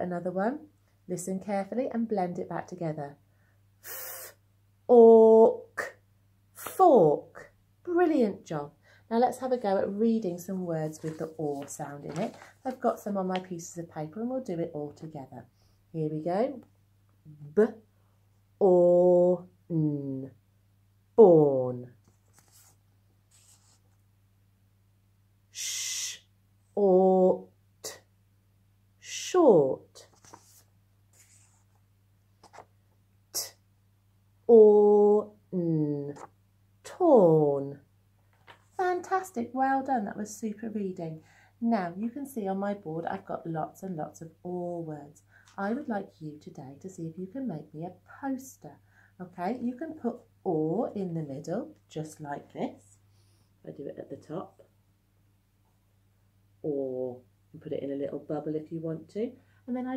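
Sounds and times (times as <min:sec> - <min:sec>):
paper cards rustling: 0:10.9 - 0:13.5, 0:22.0 - 0:24.0, 0:30.1 - 0:31.8, 0:32.4 - 0:32.7, 0:38.3 - 0:38.8.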